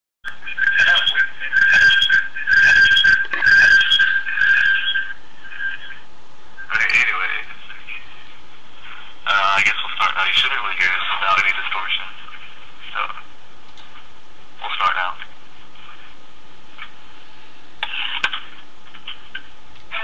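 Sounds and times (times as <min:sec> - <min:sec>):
steady high tone: 0:00.3 - 0:06.0
man talking through distorted microphone: 0:00.3 - 0:13.3, 0:14.6 - 0:16.2, 0:17.8 - 0:20.0.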